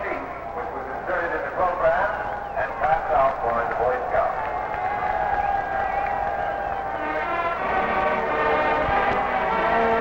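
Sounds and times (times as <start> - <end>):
stadium crowd noise: 0.0 - 10.0.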